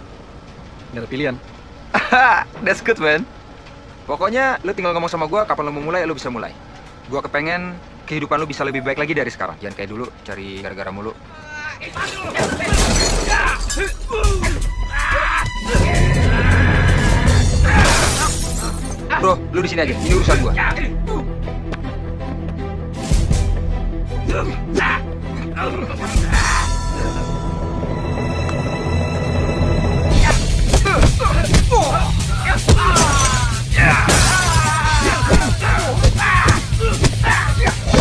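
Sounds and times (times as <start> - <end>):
car window glass shattering: 12.0 - 14.0, 17.7 - 19.0, 32.4 - 38.0
loud shattering crash: 12.0 - 14.0
background music: 12.7 - 38.0
film score with heavy bass: 13.3 - 38.0.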